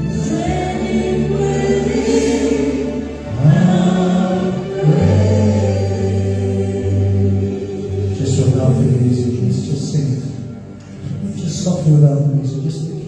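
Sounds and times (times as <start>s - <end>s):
voices singing a praise song: 0.0s - 8.9s.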